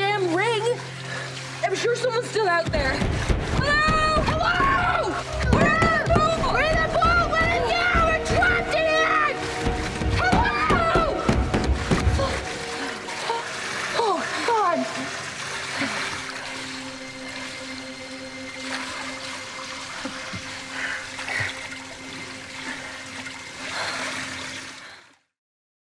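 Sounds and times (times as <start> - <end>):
pool water sloshing: 0.0 - 25.1.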